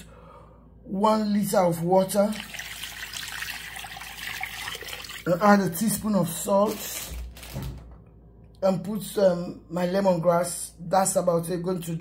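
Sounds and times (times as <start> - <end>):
water pouring into pot: 2.2 - 5.4.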